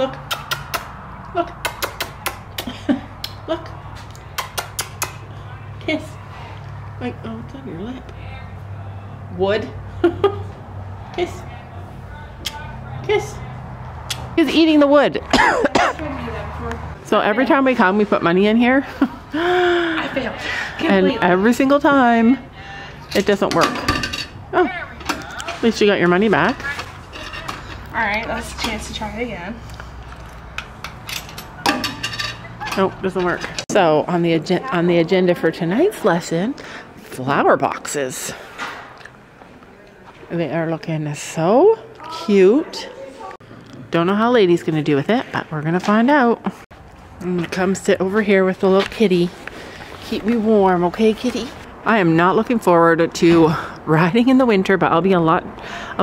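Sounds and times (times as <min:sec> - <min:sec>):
woman's kissing smacks: 0:00.2 - 0:00.9, 0:01.6 - 0:02.7.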